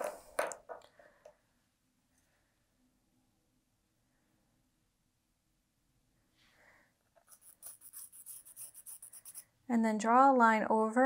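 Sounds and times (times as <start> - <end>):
marker scratching on fabric: 7.2 - 9.5.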